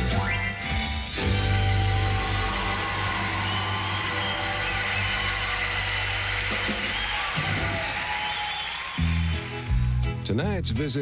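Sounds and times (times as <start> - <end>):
instrumental theme music: 0.0 - 11.0.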